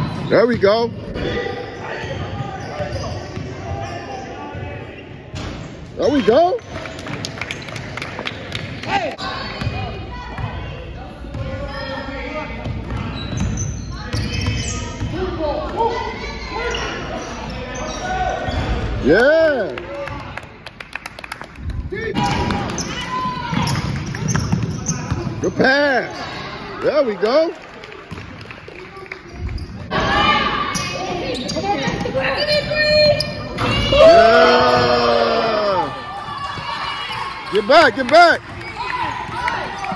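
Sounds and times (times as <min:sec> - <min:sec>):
people shouting: 0:33.6 - 0:37.8.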